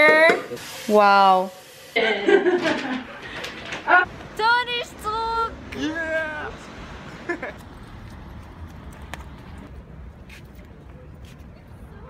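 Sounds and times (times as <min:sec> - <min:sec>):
street background rumble: 0:02.4 - 0:12.0.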